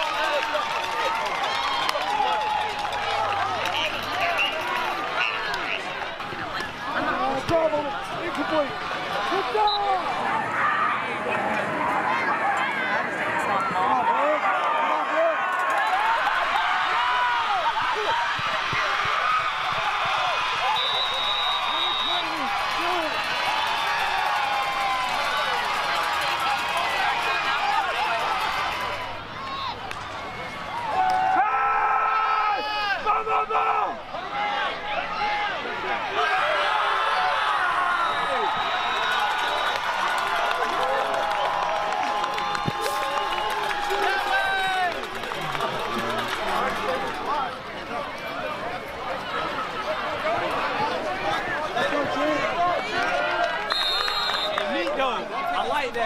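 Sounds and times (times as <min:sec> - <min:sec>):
crowd shouting and cheering: 0:00.0 - 0:56.0.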